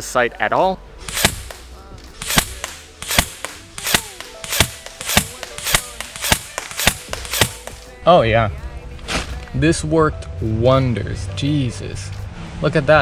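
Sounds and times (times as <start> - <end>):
airsoft rifle single shots: 1.1 - 7.9.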